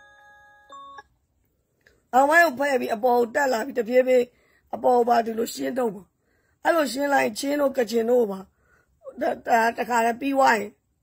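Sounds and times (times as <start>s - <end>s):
brief higher tone: 0.0s - 1.1s
faint chime-like ringing: 0.0s - 1.1s.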